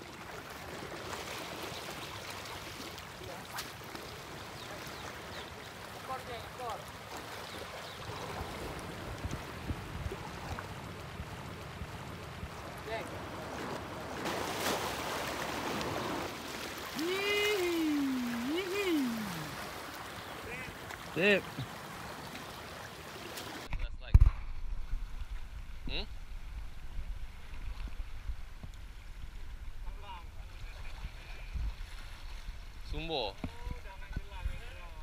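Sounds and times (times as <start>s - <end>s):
sea water lapping: 0.0s - 23.7s
wind: 0.0s - 35.0s
person calling out: 17.0s - 19.6s.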